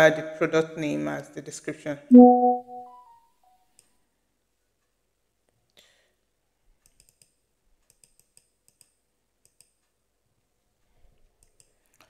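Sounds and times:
computer mouse clicks: 0:06.8 - 0:09.8, 0:11.4 - 0:11.8.

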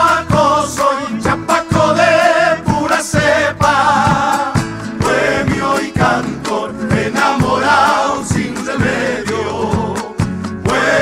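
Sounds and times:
chorus singing: 0:00.0 - 0:11.0
strummed acoustic guitars: 0:00.0 - 0:11.0.

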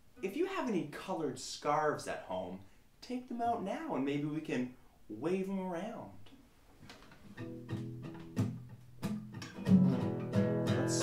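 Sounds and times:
classical guitar strumming: 0:07.2 - 0:11.0.

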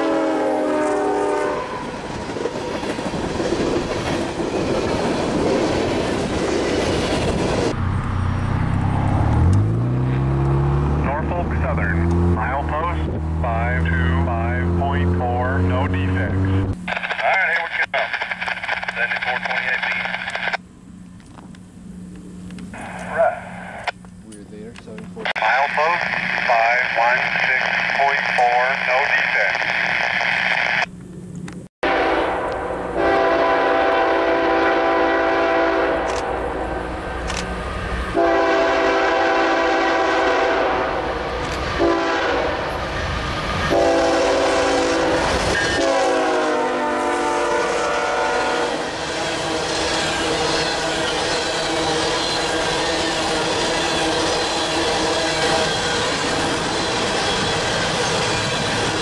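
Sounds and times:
locomotive air horn: 0:00.0 - 0:02.0, 0:31.8 - 0:36.8, 0:38.1 - 0:42.7, 0:43.6 - 0:55.6
low rumble of train: 0:00.0 - 0:59.0.

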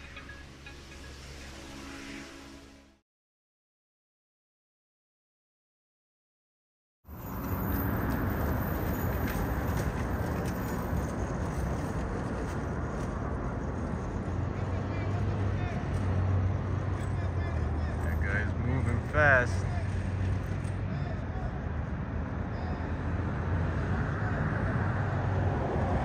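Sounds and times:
street traffic noise: 0:00.0 - 0:02.9, 0:07.1 - 0:26.0.

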